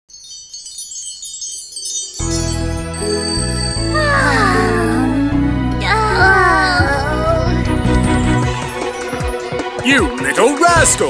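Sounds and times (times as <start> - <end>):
wind-chime shimmer sound effect: 0.1 - 5.3, 8.0 - 9.5.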